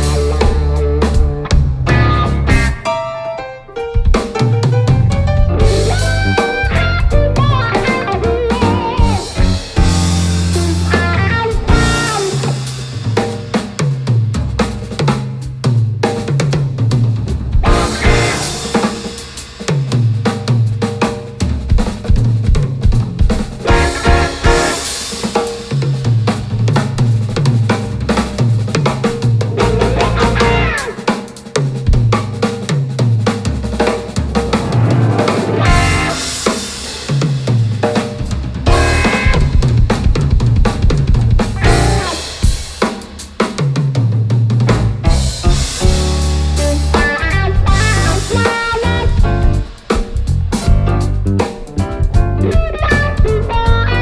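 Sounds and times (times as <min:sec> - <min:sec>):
bass line: 0:00.0 - 0:02.9, 0:04.0 - 0:12.9, 0:17.4 - 0:18.8, 0:23.6 - 0:24.9, 0:29.4 - 0:30.9, 0:34.6 - 0:36.3, 0:38.6 - 0:42.4, 0:44.6 - 0:54.0
drum kit playing groove: 0:00.0 - 0:54.0.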